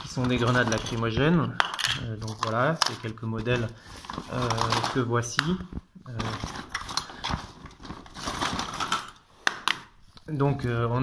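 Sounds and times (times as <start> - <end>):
rustling: 2.2 - 9.2.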